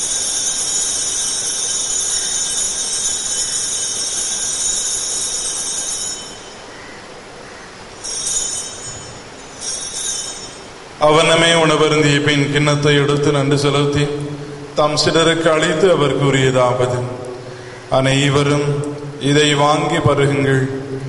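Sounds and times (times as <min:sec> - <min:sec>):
altar bells ringing: 0:00.0 - 0:07.0, 0:07.9 - 0:12.8.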